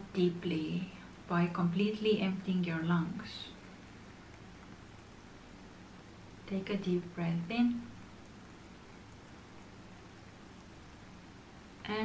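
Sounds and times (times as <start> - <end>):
faint steady hiss: 0.0 - 12.0
low hum: 0.0 - 12.0.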